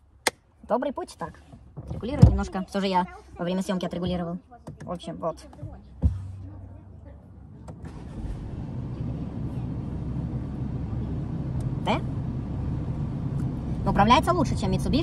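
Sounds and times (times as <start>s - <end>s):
car engine and road rumble: 0.0s - 15.0s.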